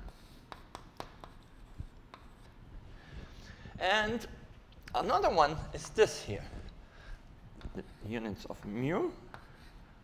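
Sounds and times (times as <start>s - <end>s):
handwriting: 0.0s - 2.6s, 8.6s - 9.9s.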